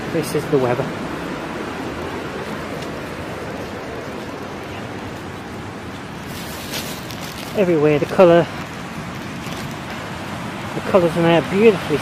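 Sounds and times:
rushing river and waterfall: 0.0s - 12.0s.

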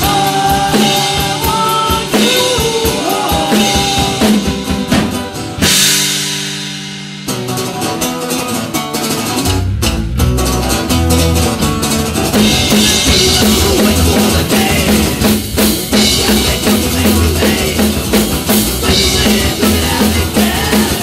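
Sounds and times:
busy drumming: 0.0s - 21.0s
live rock band playing: 0.0s - 21.0s.

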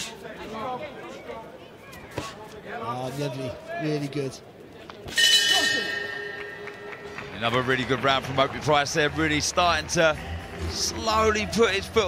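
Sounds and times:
boxing ring bell: 5.2s - 7.2s.

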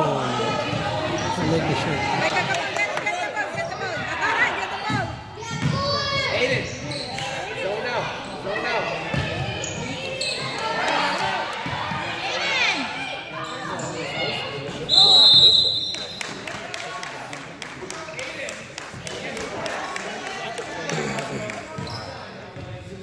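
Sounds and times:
sneakers squeaking: 5.0s - 7.5s, 9.0s - 10.7s, 13.4s - 16.4s, 21.7s - 22.9s
referee's whistle: 14.9s - 16.2s.

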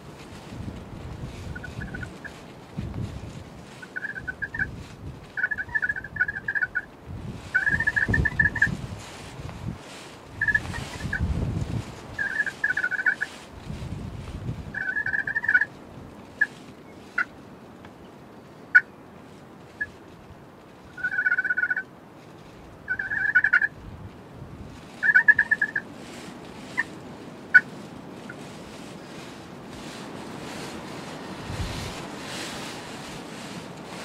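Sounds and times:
turkey gobbling: 1.5s - 2.3s, 3.9s - 4.7s, 5.4s - 6.9s, 7.5s - 8.7s, 10.4s - 11.1s, 12.2s - 13.3s, 14.8s - 15.7s, 21.0s - 21.8s, 22.9s - 23.7s, 25.0s - 25.9s.

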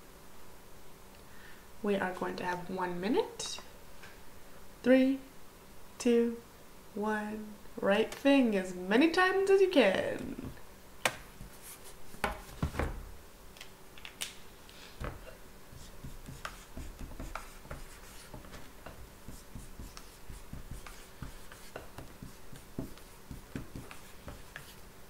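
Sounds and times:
marker scratching on whiteboard: 15.7s - 24.8s.

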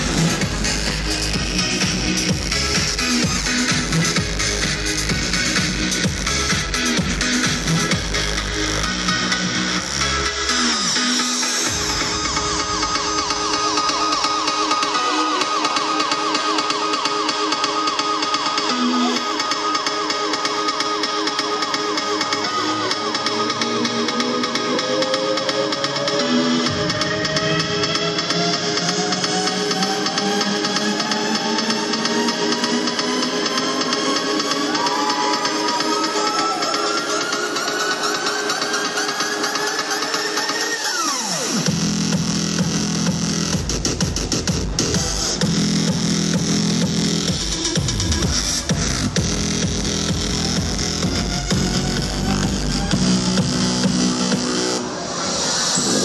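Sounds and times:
deep bass: 0.0s - 15.1s, 41.6s - 54.8s
electronic dance music: 0.0s - 56.0s.

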